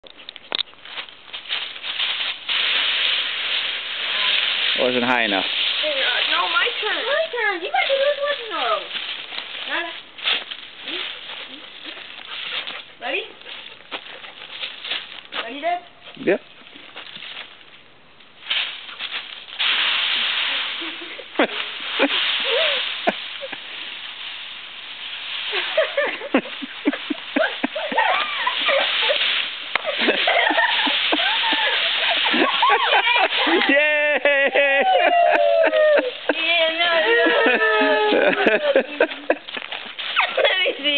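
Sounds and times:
dry leaves rustling: 0:00.0 - 0:40.9
people's voices and exclamations: 0:32.9 - 0:38.7.

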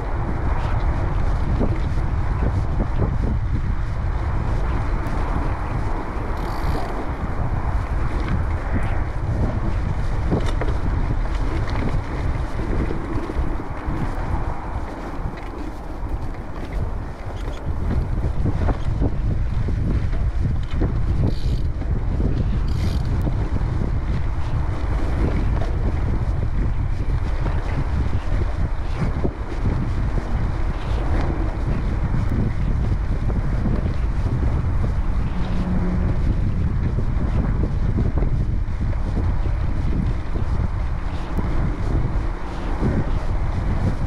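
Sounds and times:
bike ticks and rattles: 0:00.0 - 0:44.0
wind rumble on microphone: 0:00.0 - 0:44.0
bike tyres rolling on dirt: 0:01.9 - 0:21.4.

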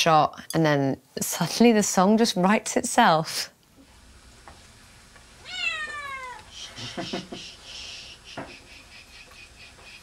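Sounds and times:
cat meowing: 0:05.4 - 0:06.5.

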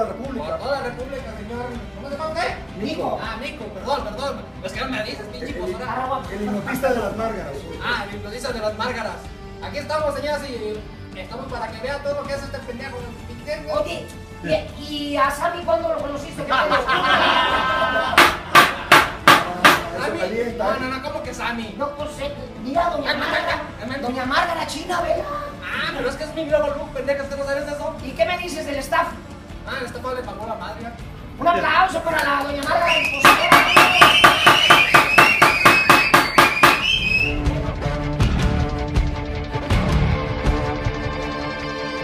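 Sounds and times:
theme music: 0:00.0 - 0:42.0
rapid hand clapping: 0:18.2 - 0:19.9, 0:32.1 - 0:37.1
wooden paddle knocking: 0:18.2 - 0:19.9, 0:33.2 - 0:37.1
high held tone: 0:32.9 - 0:37.4.

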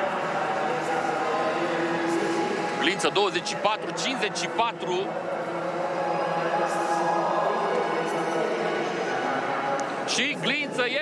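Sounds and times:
broadcast ambience: 0:00.0 - 0:11.0
man speaking: 0:02.8 - 0:05.1.

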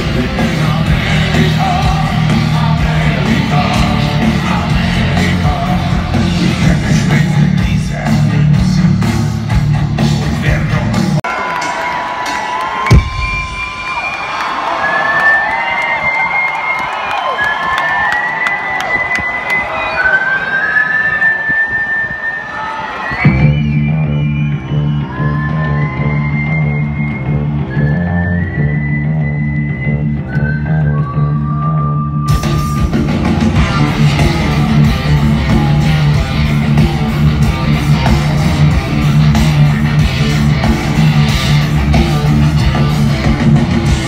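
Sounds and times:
rock band with distorted guitars: 0:00.0 - 0:11.2, 0:32.2 - 0:44.0
crowd cheering: 0:10.9 - 0:31.7, 0:32.3 - 0:44.0
whistled melody: 0:14.8 - 0:40.0.

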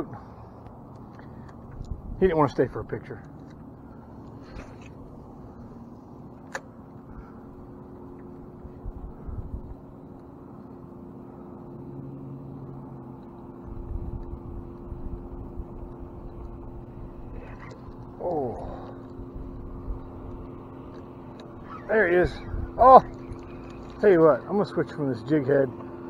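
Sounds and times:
boat motor humming: 0:00.0 - 0:26.0
wind rumble on microphone: 0:01.6 - 0:02.6, 0:07.0 - 0:10.1, 0:13.6 - 0:20.6, 0:22.1 - 0:23.6.

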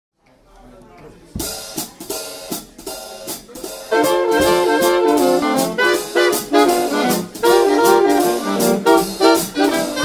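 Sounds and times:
drum kit playing swing: 0:01.3 - 0:10.0.

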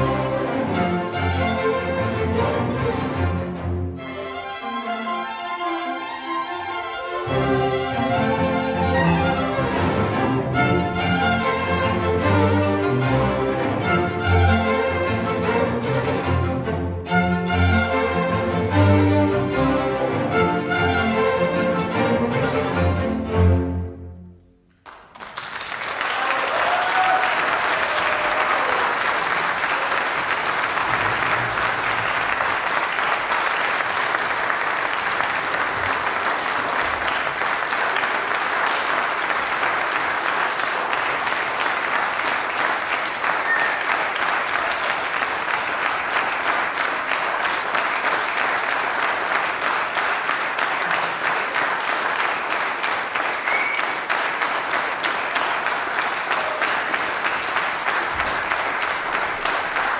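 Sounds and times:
audience applauding: 0:06.8 - 0:15.8, 0:24.7 - 0:59.9.

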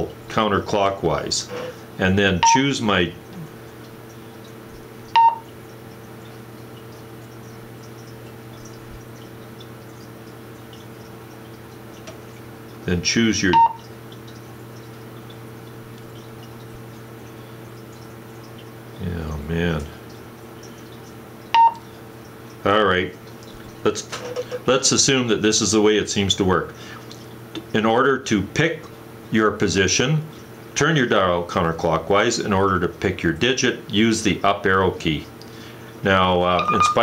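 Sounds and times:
radio keypad beep: 0:02.4 - 0:02.7, 0:05.2 - 0:05.4, 0:13.5 - 0:13.8, 0:21.6 - 0:21.8, 0:36.6 - 0:37.0.

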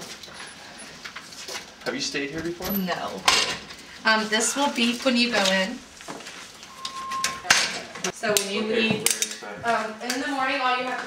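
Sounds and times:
door alarm beep: 0:06.7 - 0:07.6.

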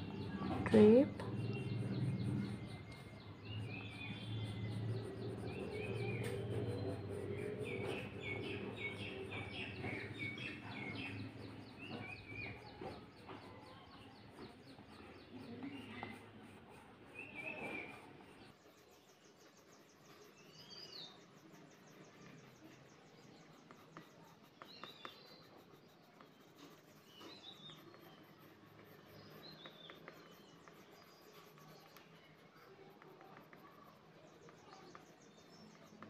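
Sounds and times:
small birds chirping: 0:00.0 - 0:36.0.

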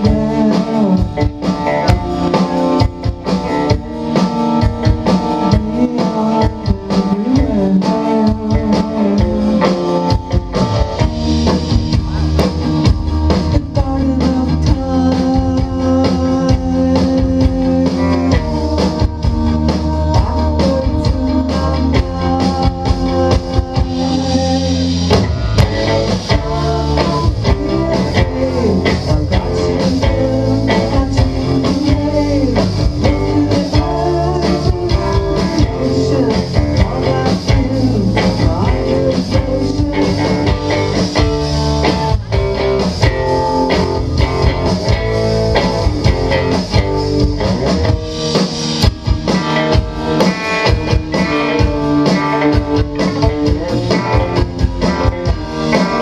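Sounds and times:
rock band playing live: 0:00.0 - 0:56.0.

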